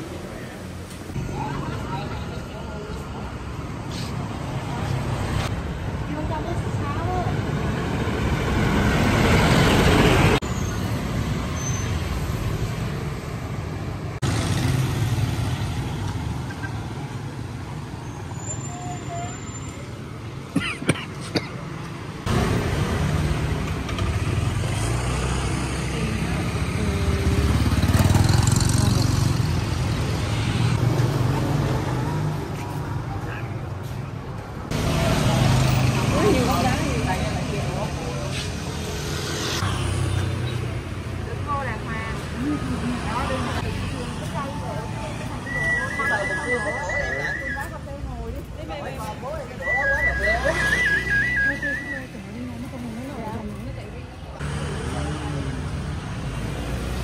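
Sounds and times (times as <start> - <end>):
traffic noise: 0.0 - 57.0
motor scooter passing: 22.2 - 32.4
voices in background: 40.4 - 55.9.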